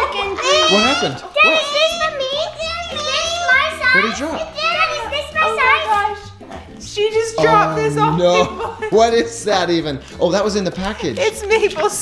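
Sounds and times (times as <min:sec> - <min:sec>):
children talking excitedly: 0:00.0 - 0:09.1
woman talking: 0:06.9 - 0:08.8.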